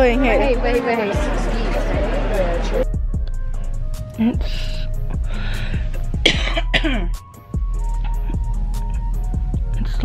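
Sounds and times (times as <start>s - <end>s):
music with steady beat: 0.0s - 10.0s
person coughing: 6.0s - 7.2s.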